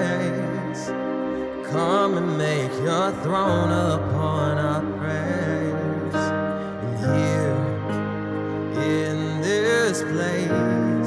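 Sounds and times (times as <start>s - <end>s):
man singing: 0.0s - 11.0s
sustained keyboard chords: 0.0s - 11.0s.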